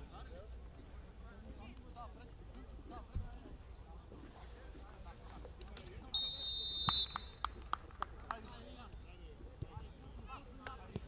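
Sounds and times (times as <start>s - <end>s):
referee's whistle blast: 6.2s - 7.4s.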